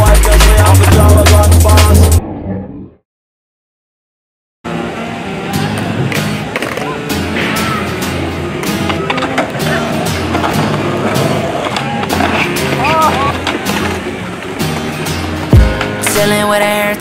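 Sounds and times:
hip-hop instrumental: 0.0s - 2.2s, 14.6s - 17.0s
skateboard wheels rolling: 4.8s - 16.4s
skateboard clacks and knocks: 8.6s - 14.9s.

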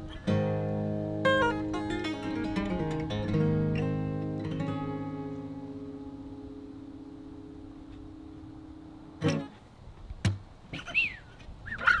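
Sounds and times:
bird calling: 10.7s - 12.0s.

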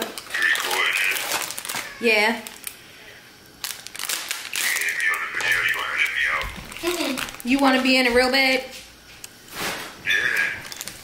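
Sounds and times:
plastic bag crinkling: 0.0s - 2.8s, 3.4s - 8.4s, 9.5s - 11.0s.

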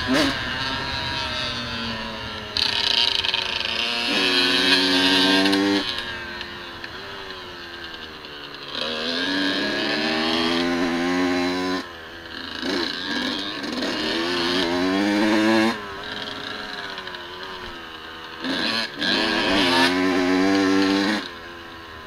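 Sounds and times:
dirt bike engine revving: 0.0s - 22.0s.

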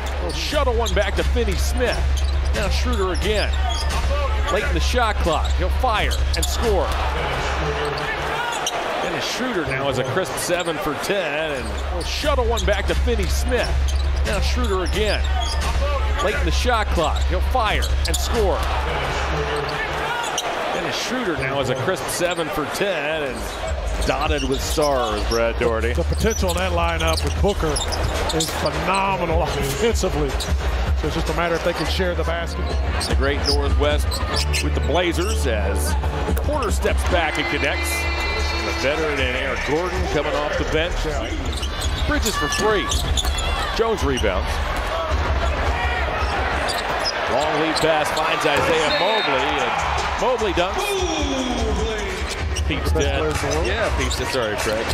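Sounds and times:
basketball court sounds: 0.0s - 22.6s, 23.3s - 35.3s, 35.9s - 54.9s
crowd noise: 0.0s - 54.9s
commentator speaking: 0.2s - 7.5s, 9.0s - 15.3s, 16.1s - 18.8s, 31.0s - 43.0s, 47.3s - 54.9s.

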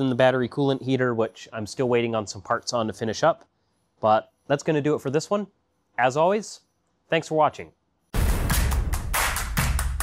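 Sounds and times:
percussive hits over heavy bass: 8.2s - 10.0s.

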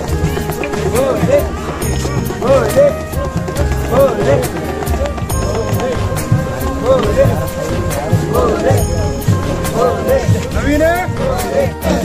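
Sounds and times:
crowd voices: 0.0s - 12.0s
procession band music: 0.0s - 12.0s
steady drumbeat: 0.0s - 12.0s.

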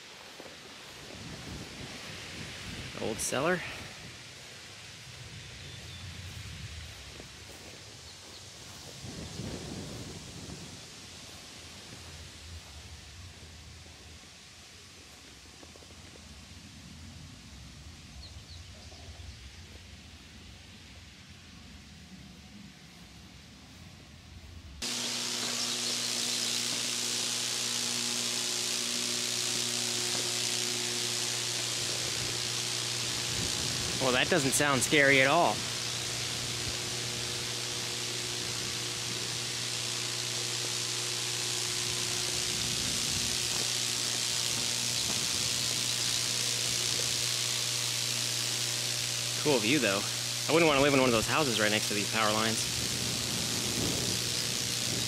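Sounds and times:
low electrical hum: 0.0s - 55.0s
power lines crackling hiss: 0.0s - 55.0s.

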